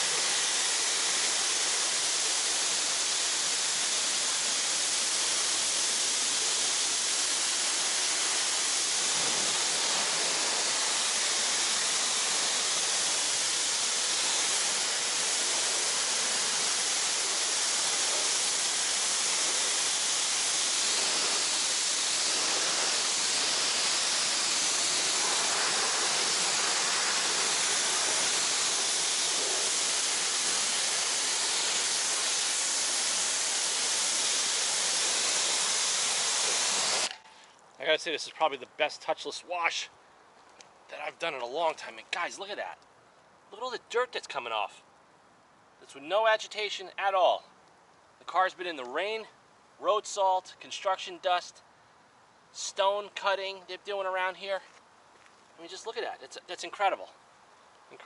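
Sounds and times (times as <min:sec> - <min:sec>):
pressure washer spray hissing: 0:00.0 - 0:37.3.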